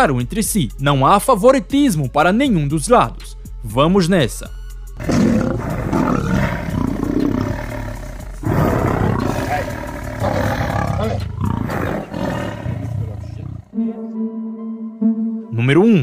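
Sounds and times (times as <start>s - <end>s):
lion and tiger growling and roaring: 5.0s - 13.8s.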